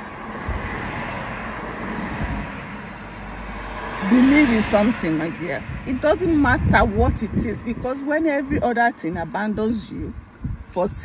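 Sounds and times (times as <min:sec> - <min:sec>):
car interior rumble: 0:00.0 - 0:11.0.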